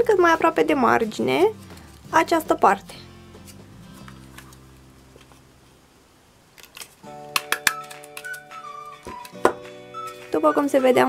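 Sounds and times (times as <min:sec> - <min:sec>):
soft background music: 0:00.0 - 0:05.8, 0:06.7 - 0:11.0.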